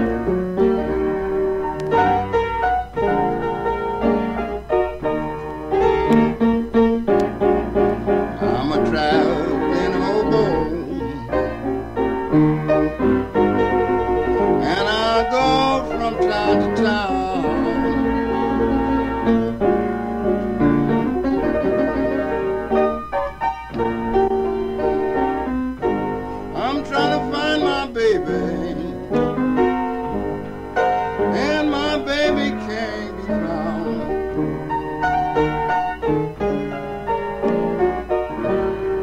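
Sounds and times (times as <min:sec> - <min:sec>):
blues piano: 0:00.0 - 0:39.0
man singing: 0:08.4 - 0:11.7, 0:14.6 - 0:19.6, 0:21.0 - 0:22.6, 0:26.5 - 0:29.4, 0:31.2 - 0:34.4.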